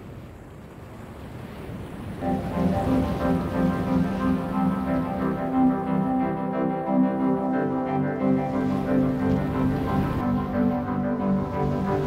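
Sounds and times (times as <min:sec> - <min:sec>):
sea and wind rushing: 0:00.0 - 0:12.0
music of sustained chords: 0:02.2 - 0:12.0.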